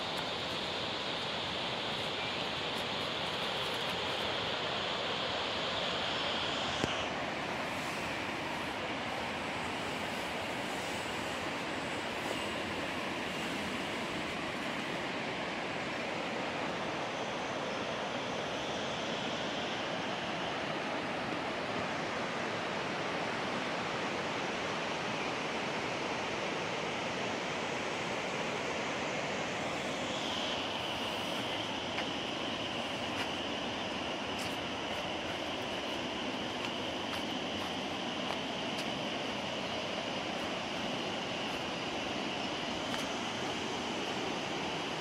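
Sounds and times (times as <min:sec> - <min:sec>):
water rushing: 0:00.0 - 0:17.2, 0:27.8 - 0:45.0.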